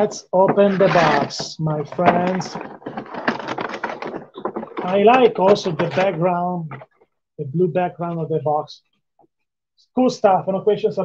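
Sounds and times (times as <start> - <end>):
packaging crackling and clicking: 0.8 - 7.0.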